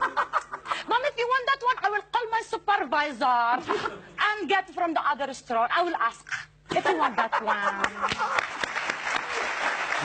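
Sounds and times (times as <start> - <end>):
audience applauding: 7.8 - 10.0.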